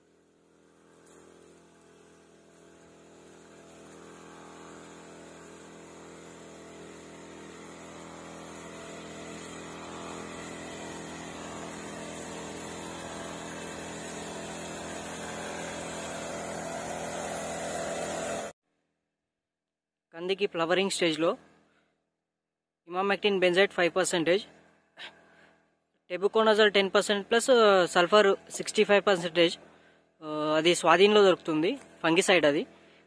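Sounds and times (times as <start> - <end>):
crop sprayer engine running: 0.0 - 18.6, 26.2 - 33.0.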